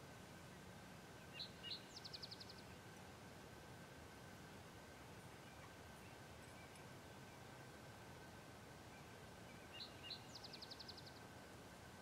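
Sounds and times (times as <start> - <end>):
songbird calling faintly: 0.4 - 3.2, 5.0 - 11.4.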